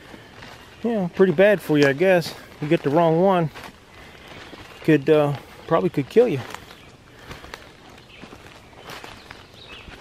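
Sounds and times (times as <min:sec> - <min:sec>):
footsteps in dry leaves: 0:00.0 - 0:10.0.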